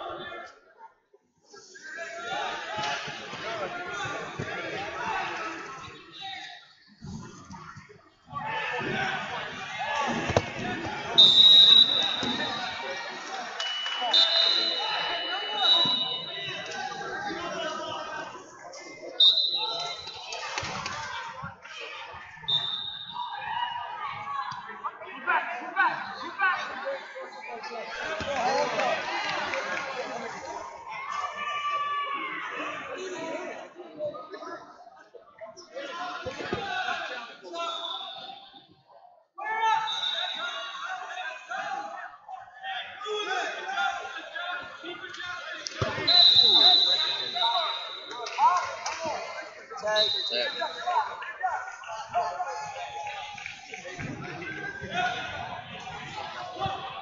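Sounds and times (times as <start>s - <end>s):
chatter echoing in a hall: 0.0s - 57.0s
referee's whistle: 11.1s - 12.8s, 13.6s - 16.7s, 19.2s - 20.2s, 22.5s - 23.4s, 37.5s - 38.8s, 39.6s - 40.9s, 45.8s - 48.2s, 49.8s - 51.1s.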